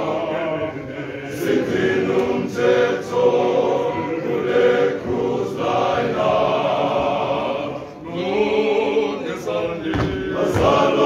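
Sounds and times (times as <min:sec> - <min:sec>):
male voice choir singing: 0:00.0 - 0:11.0.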